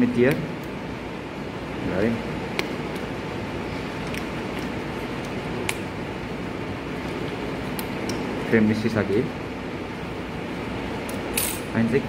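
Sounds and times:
fan-like room noise: 0:00.0 - 0:12.0.

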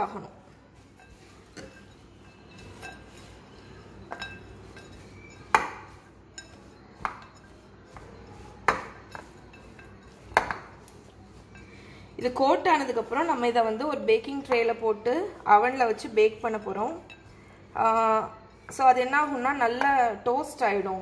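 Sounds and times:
spatula stirring oats and nuts: 0:00.0 - 0:20.3
spatula clinking on glass bowl: 0:00.1 - 0:20.3.

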